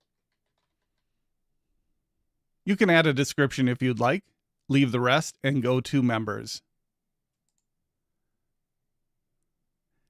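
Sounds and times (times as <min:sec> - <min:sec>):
faint keyboard typing: 0:00.0 - 0:01.3, 0:07.2 - 0:07.8.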